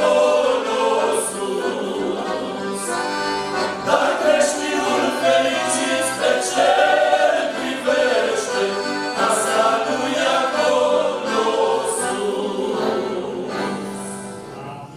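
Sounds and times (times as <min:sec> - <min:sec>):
male vocal group singing a hymn: 0:00.0 - 0:14.4
accordions: 0:00.0 - 0:14.9.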